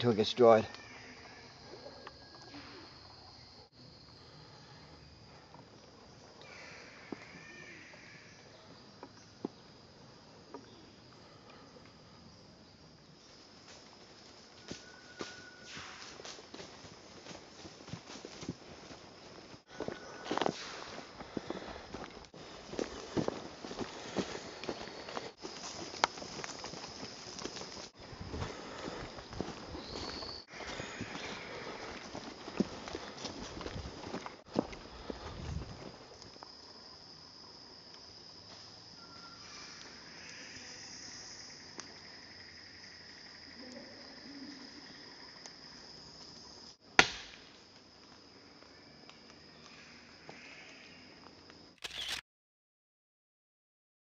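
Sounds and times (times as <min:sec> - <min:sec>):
high insect drone: 0:00.0 - 0:52.2
footsteps crunching through leaves: 0:14.6 - 0:36.0
sharp click: 0:51.8 - 0:52.2.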